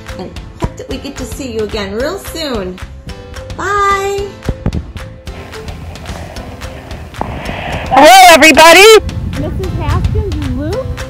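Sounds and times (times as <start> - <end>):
wind rumbling on microphone: 4.6 - 11.0
hiss: 5.3 - 8.0.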